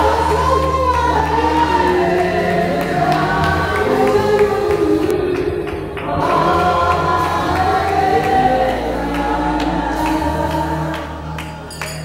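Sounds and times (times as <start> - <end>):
congregation singing: 0.0 - 12.0
sustained low bass notes: 0.0 - 12.0.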